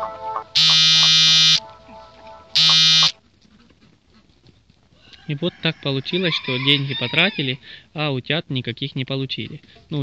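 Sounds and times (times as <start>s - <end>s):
loud buzzing tone: 0.6s - 1.6s, 2.6s - 3.2s.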